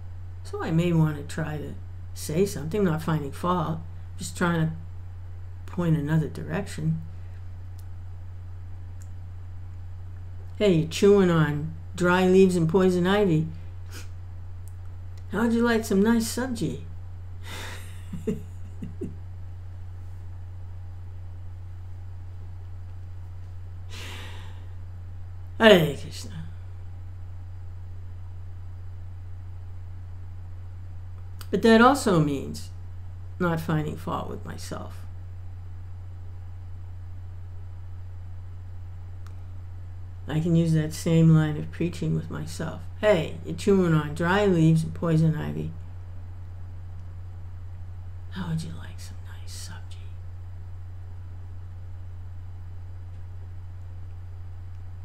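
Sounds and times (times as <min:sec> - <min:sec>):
low electrical hum: 0:00.0 - 0:55.0
person laughing through breath: 0:17.4 - 0:19.2, 0:23.9 - 0:24.7.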